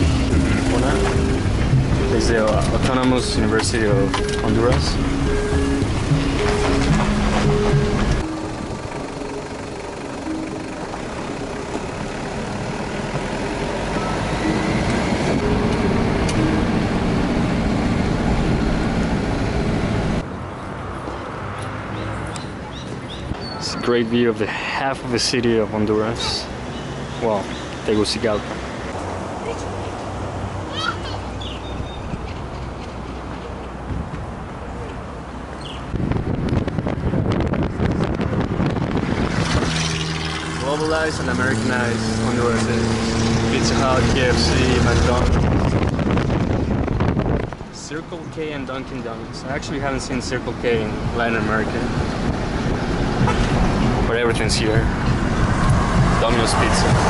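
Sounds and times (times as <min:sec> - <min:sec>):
car engine and road noise: 0:00.0 - 0:57.0
wind buffeting microphone: 0:35.6 - 0:41.6, 0:42.2 - 0:47.8, 0:49.8 - 0:57.0.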